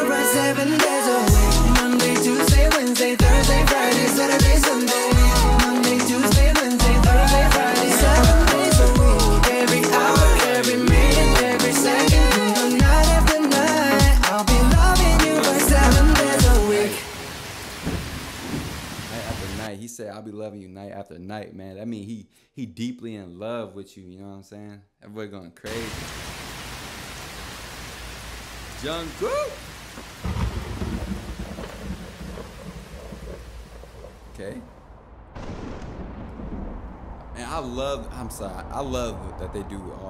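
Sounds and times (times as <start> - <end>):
pop song with vocals: 0.0 - 17.4
steady rain: 15.0 - 19.7, 25.7 - 40.0
thunder: 17.8 - 19.6, 30.2 - 40.0.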